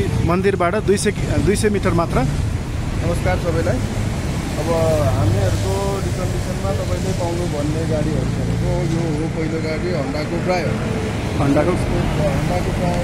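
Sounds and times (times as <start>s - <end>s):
road traffic rumble: 0.0s - 13.0s
man talking: 4.5s - 13.0s.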